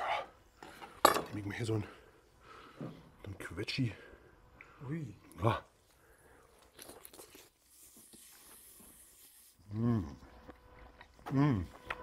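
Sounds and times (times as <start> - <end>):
faint chewing: 5.8 - 8.6.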